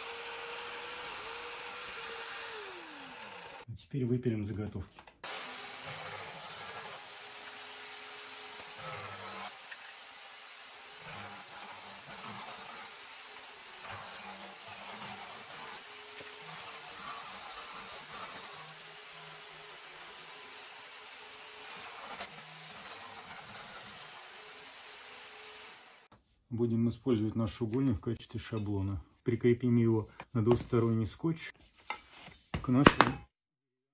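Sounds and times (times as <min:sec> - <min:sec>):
electric jigsaw cutting plywood: 0:00.0 - 0:03.7, 0:05.2 - 0:26.1.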